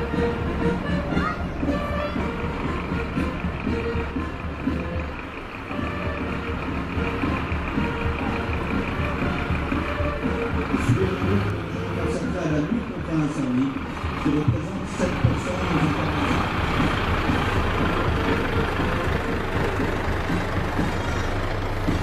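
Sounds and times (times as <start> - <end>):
background music: 0.0 - 22.0
fire engines diesel engines running: 0.0 - 22.0.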